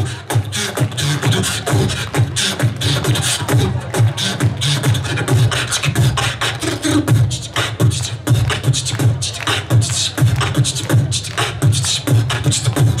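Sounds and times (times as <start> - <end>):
person beatboxing: 0.0 - 13.0.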